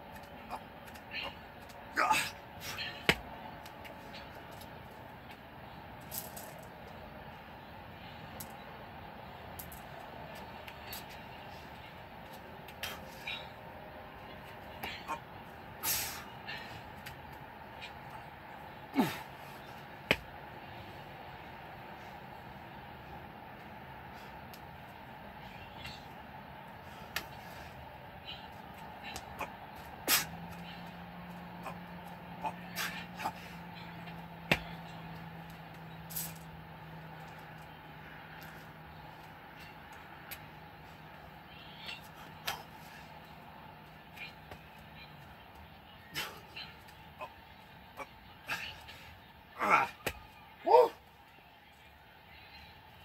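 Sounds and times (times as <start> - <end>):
hands and feet slapping concrete: 0.0 - 5.4, 20.0 - 20.3, 34.0 - 36.5, 38.4 - 40.6, 49.6 - 50.2
outdoor background noise: 0.0 - 53.0.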